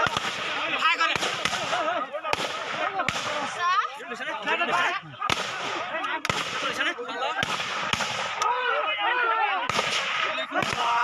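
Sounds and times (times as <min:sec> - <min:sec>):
gunshots: 0:00.0 - 0:03.6, 0:05.2 - 0:08.6, 0:09.6 - 0:11.0
men shouting: 0:00.0 - 0:11.0.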